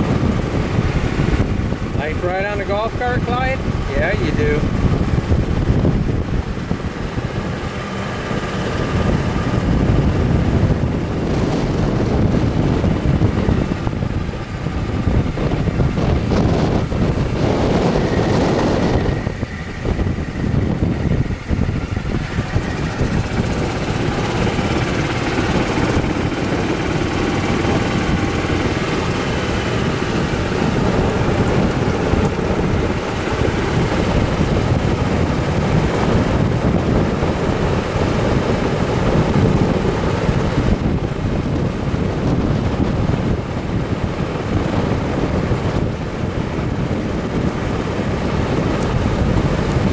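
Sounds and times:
golf cart driving: 0:00.0 - 0:49.9
wind noise on microphone: 0:00.0 - 0:49.9.

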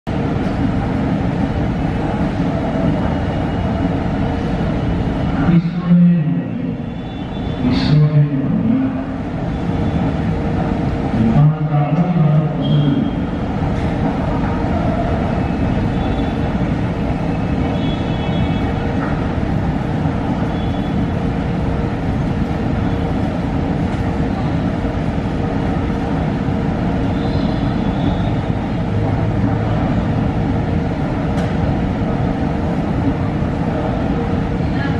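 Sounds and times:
underground station rumble: 0:00.1 - 0:34.9
people's voices: 0:00.3 - 0:20.8, 0:22.6 - 0:34.9.

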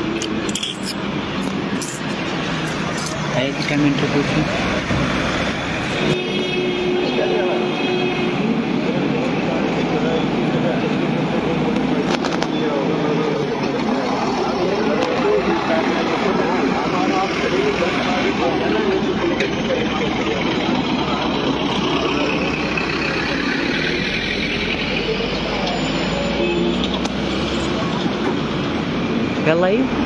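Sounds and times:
people talking: 0:00.0 - 0:28.4, 0:29.4 - 0:30.0
road traffic: 0:00.0 - 0:30.0
truck passing close: 0:00.0 - 0:30.0.

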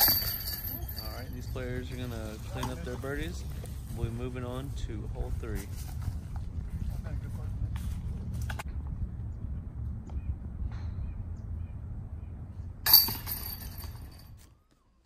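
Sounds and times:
disc striking basket chains: 0:00.0 - 0:02.8, 0:12.9 - 0:14.5
wind rumble on microphone: 0:03.0 - 0:12.9.

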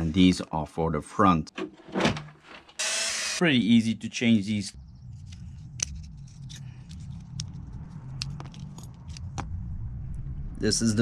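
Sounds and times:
steady low hum: 0:03.5 - 0:11.0.

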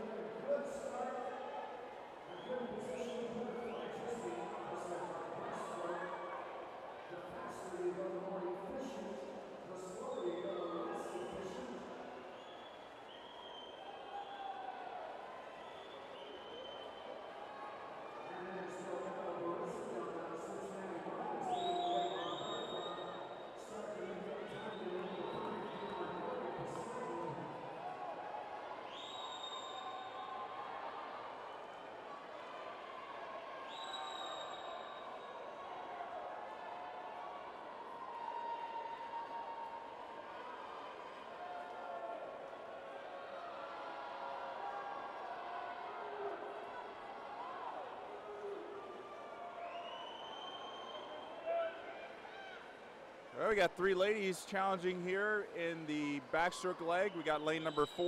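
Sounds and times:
shrill whistle-like tones: 0:12.3 - 0:14.5, 0:28.9 - 0:30.3, 0:33.7 - 0:35.2, 0:49.6 - 0:51.4
spectators cheering and shouting: 0:13.7 - 0:18.8, 0:24.4 - 0:58.0.

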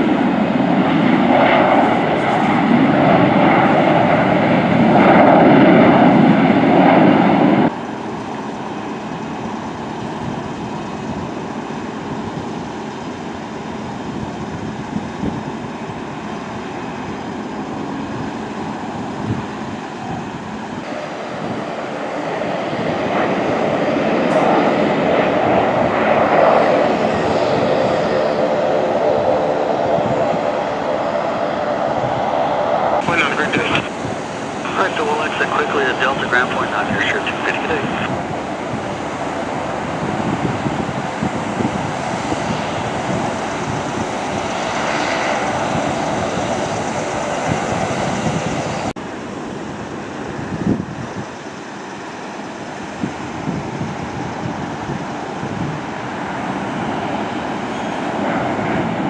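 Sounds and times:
jet engine rumble: 0:00.0 - 0:59.0
jet engine whine: 0:00.0 - 0:59.0
steady background hum: 0:26.8 - 0:46.0.

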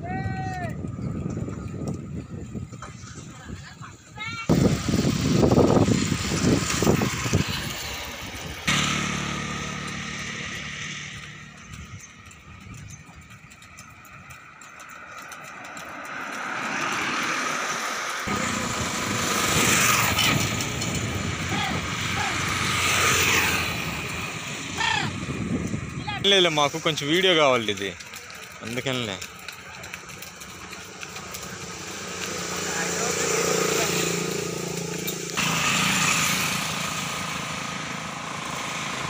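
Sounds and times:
highway traffic passing: 0:00.7 - 0:39.0
low engine hum: 0:04.5 - 0:39.0.

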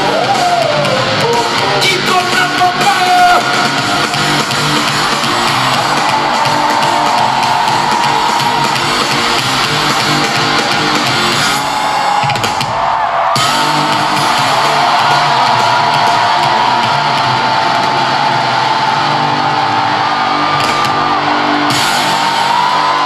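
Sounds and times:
loud live pop concert music: 0:00.0 - 0:23.0.

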